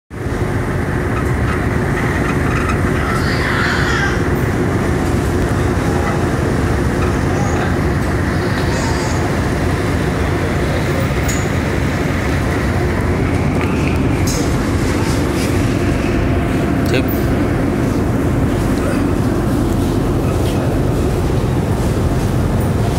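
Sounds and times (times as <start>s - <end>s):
ship engines droning: 0.1s - 22.9s.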